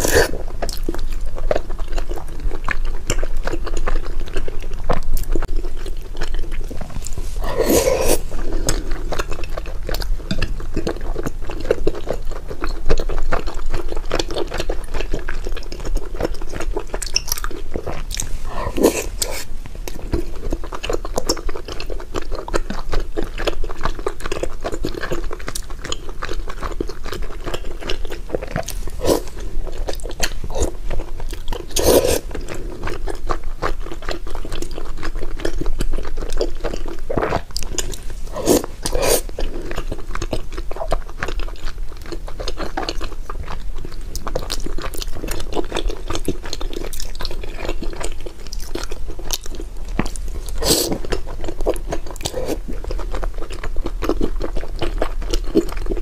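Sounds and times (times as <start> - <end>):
slurps: 0.0 - 0.4, 6.6 - 9.4, 17.8 - 20.4, 28.4 - 33.0, 37.1 - 39.9, 50.0 - 52.8
chewing sticky food: 0.0 - 56.0.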